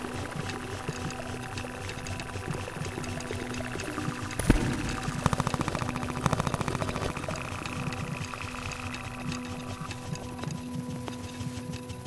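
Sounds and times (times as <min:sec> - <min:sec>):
ambient droning tones: 0:00.0 - 0:12.0
machine-like rattle of pulses: 0:00.0 - 0:12.0
sharp thump: 0:04.4 - 0:05.3.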